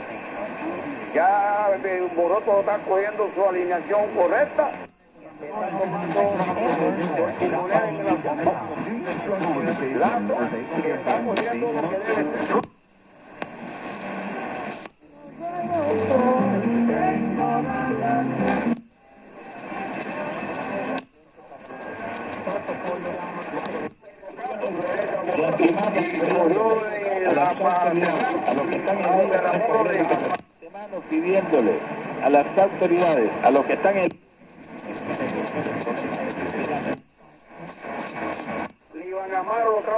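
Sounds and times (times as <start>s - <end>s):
talk on am radio: 1.0s - 12.7s, 19.6s - 39.9s
music on am radio: 13.4s - 23.9s.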